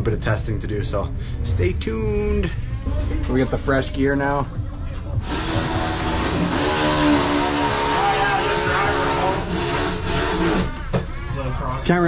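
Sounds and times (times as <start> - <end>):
snowmobile engine revving: 5.3 - 10.5.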